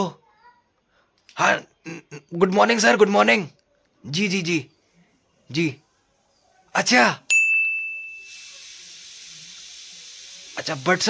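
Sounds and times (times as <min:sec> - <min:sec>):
steady high hiss: 0:06.8 - 0:11.0
bright bell-like ding: 0:07.3 - 0:08.5.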